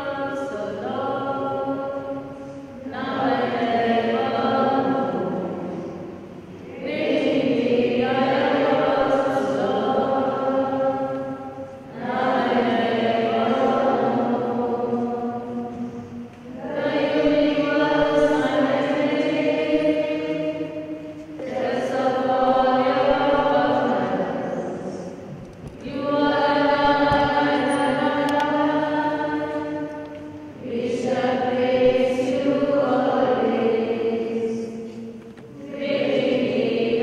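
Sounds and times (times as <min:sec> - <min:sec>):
choir chanting: 0:00.0 - 0:37.0.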